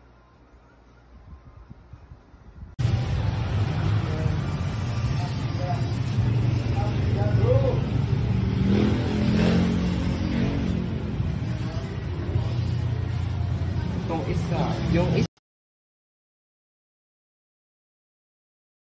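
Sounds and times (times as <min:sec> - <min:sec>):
faint voices: 0:10.8 - 0:14.9.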